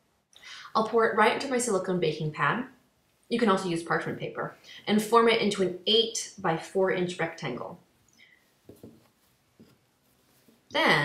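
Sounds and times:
hands patting dough: 8.4s - 10.8s.

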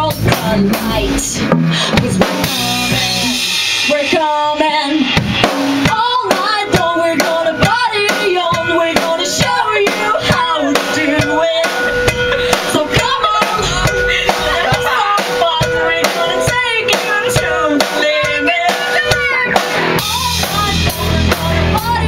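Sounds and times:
bass guitar: 0.0s - 22.0s
drum kit beat: 0.0s - 22.0s
electric guitar: 0.0s - 22.0s.

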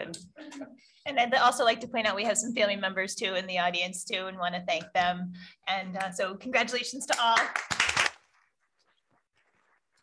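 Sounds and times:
faint scattered applause: 7.3s - 8.2s.

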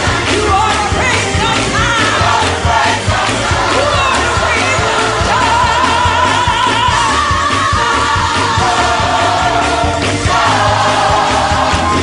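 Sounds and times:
gospel choir singing: 0.0s - 12.0s
instrumental backing: 0.0s - 12.0s.

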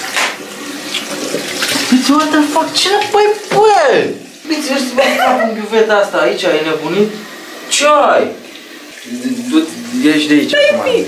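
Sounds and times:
water running from a tap: 0.0s - 11.0s.

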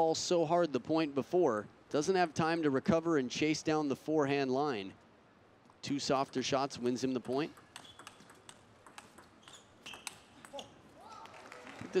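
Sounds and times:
table tennis ball clicks: 5.7s - 10.7s.

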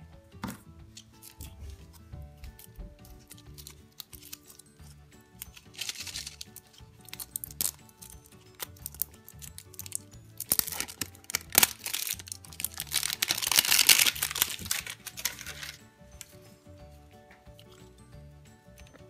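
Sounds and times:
background music: 0.0s - 19.0s
wrapper crinkling and tearing: 3.2s - 4.7s, 5.4s - 16.3s.

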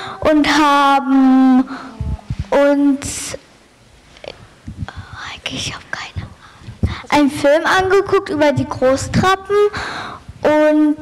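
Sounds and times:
person whispering: 1.7s - 3.3s, 4.8s - 6.6s.

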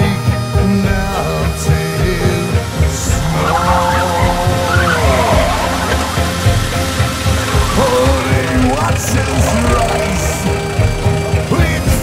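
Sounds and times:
rock music with steady beat: 0.0s - 12.0s
long tone sliding down: 1.1s - 11.7s
van driving past: 2.4s - 12.0s.

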